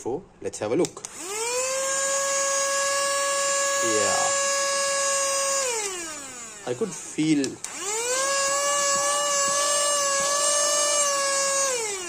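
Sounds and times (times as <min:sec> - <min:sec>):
handheld vacuum cleaner whine: 0:01.0 - 0:12.0.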